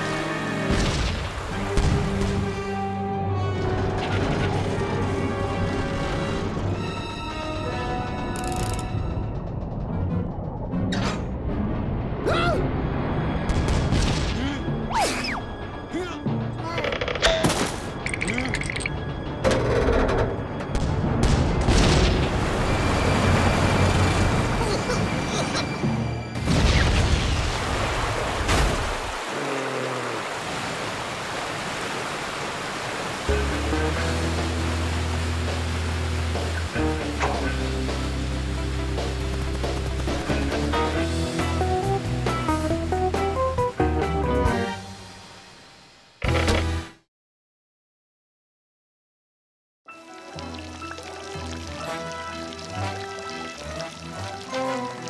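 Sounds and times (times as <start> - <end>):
rush of spraying water: 27.3 - 40.4, 50.0 - 55.0.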